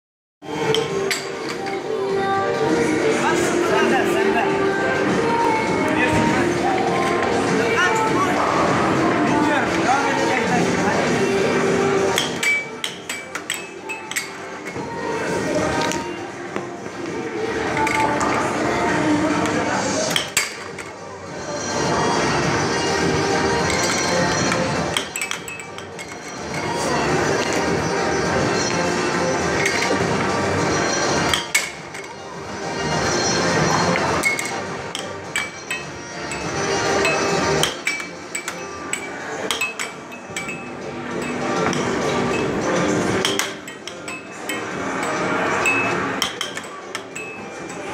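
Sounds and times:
air hockey puck clacking: 12.2 - 14.4, 34.2 - 42.6, 43.2 - 47.4.

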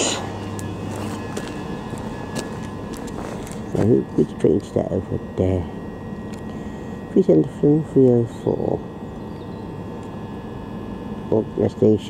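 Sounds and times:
electric train hum: 0.0 - 12.0
faint high whining tones: 0.0 - 12.0.

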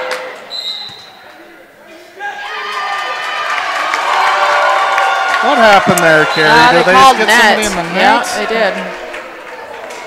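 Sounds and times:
crowd shouting and cheering: 0.0 - 10.0
referee's whistle: 0.5 - 1.2.

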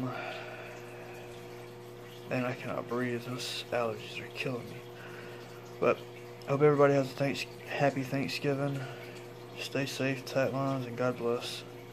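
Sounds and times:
person breathing: 0.0 - 1.2
low room hum and hiss: 0.0 - 11.9.

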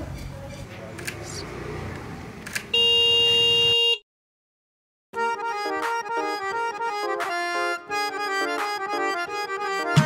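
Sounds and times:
scooter horn beep: 2.7 - 4.0.

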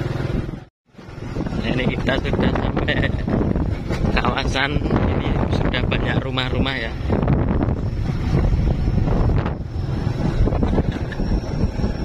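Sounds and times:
motorcycle engine running: 0.0 - 12.0
wind buffeting microphone: 0.2 - 12.0.

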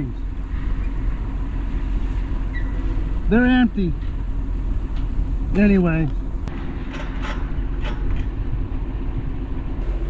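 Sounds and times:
tractor engine rumbling: 0.0 - 10.0
wind noise on microphone: 6.4 - 10.0.

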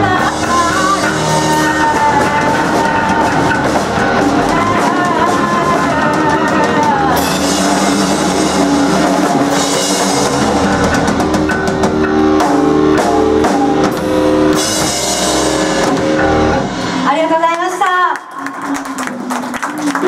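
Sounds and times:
live rock band playing: 0.0 - 19.9.

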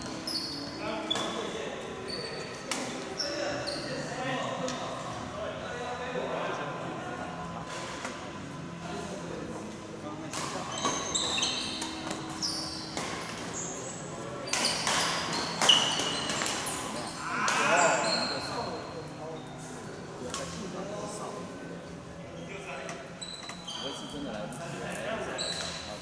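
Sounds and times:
shoe squeaks on court floor: 0.0 - 4.1, 10.6 - 19.5, 22.4 - 24.4, 25.3 - 26.0.

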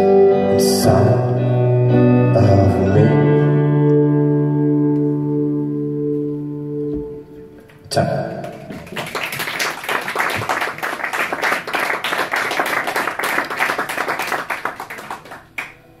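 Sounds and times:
audience clapping: 7.7 - 15.9.

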